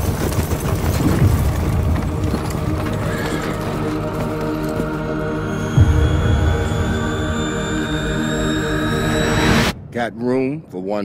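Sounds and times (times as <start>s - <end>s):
galloping horse hooves: 0.0s - 6.7s
film score sustained tones: 1.2s - 11.0s.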